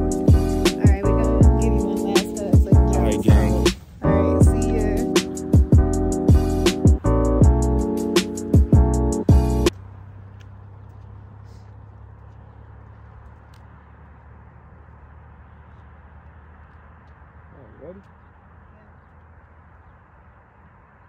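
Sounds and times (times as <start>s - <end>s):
low outdoor rumble: 8.7s - 21.0s.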